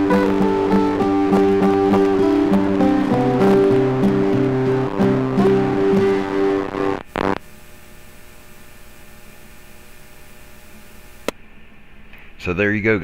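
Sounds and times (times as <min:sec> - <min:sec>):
strummed guitar music: 0:00.0 - 0:07.4
radio receiver hum and hiss: 0:00.0 - 0:11.4.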